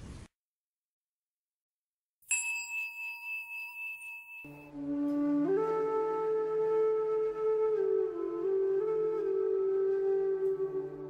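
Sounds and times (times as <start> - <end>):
meditation bell ringing: 2.3 - 4.7
flute music: 4.5 - 11.0.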